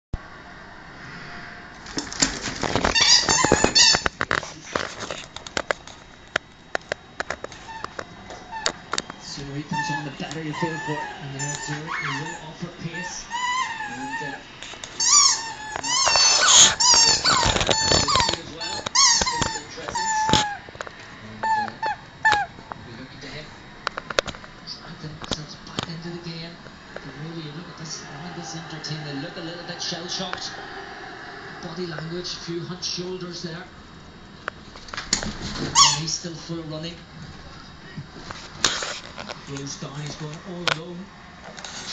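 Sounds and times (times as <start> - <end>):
pets squealing and yelping: 2.6 - 4.2, 7.6 - 20.7, 21.4 - 22.6, 35.6 - 36.2
dog whining: 2.7 - 4.1, 7.6 - 8.8, 9.6 - 20.7, 21.4 - 22.6, 35.7 - 36.1.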